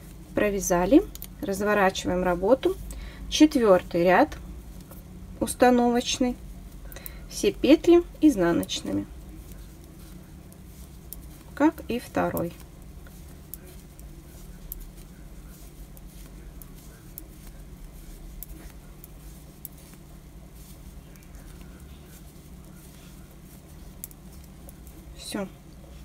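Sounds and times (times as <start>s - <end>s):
steady low hum: 0.0s - 26.0s
knitting needles clicking: 1.0s - 1.4s, 6.7s - 25.8s.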